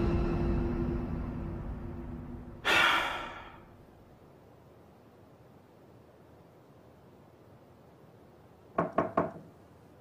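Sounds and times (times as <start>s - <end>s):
knocks on a door: 8.8s - 9.5s.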